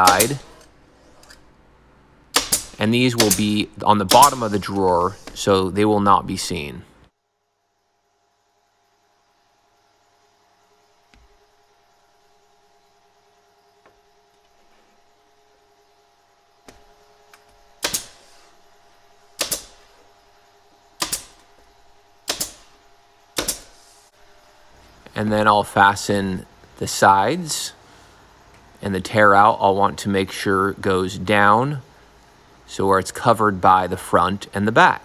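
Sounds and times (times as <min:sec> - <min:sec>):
nail gun firing: 0:00.0 - 0:00.6, 0:02.3 - 0:04.8, 0:17.8 - 0:18.3, 0:19.4 - 0:19.8, 0:21.0 - 0:21.4, 0:22.2 - 0:22.7, 0:23.4 - 0:23.8
faint steady hum: 0:00.0 - 0:35.0.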